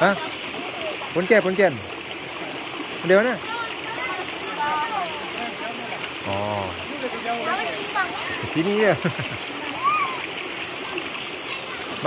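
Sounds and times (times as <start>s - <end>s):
children splashing in water: 0.0s - 12.0s
stream running over rocks: 0.0s - 12.0s.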